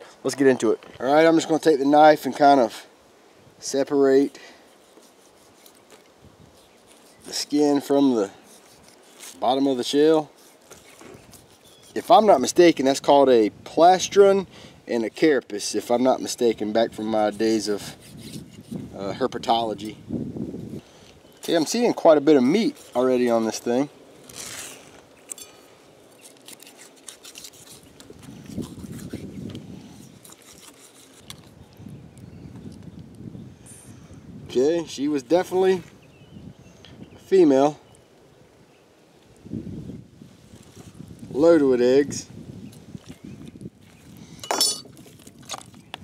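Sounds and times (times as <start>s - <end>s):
knife scraping turtle shell: 4.2s - 12.5s, 17.4s - 18.9s, 21.4s - 31.8s
knife clinking: 44.4s - 44.9s.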